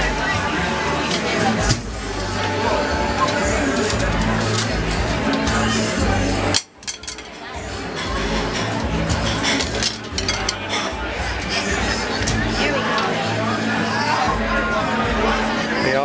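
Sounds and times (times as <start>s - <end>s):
music over sound system: 0.0s - 12.9s
crowd chatter: 0.0s - 16.0s.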